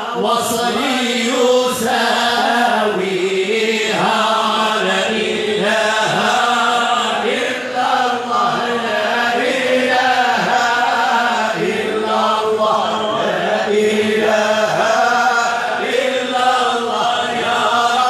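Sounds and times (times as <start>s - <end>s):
group of men chanting: 0.0s - 18.0s.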